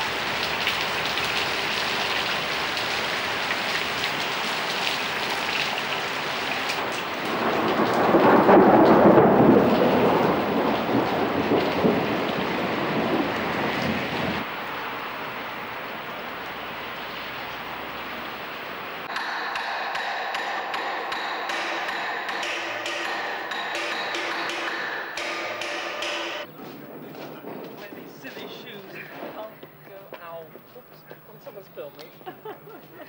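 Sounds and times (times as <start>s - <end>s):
rain falling: 0.0s - 19.1s, 20.4s - 31.4s
ringing metallic strikes: 19.1s - 26.5s.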